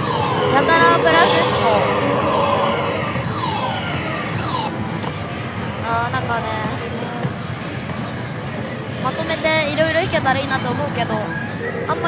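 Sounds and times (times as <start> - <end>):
falling electronic tones: 0.0 - 4.9
slot hall din: 0.0 - 4.9.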